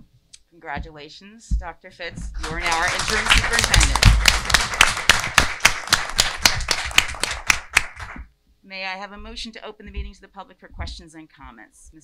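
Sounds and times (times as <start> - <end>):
people applauding: 2.4 - 8.2.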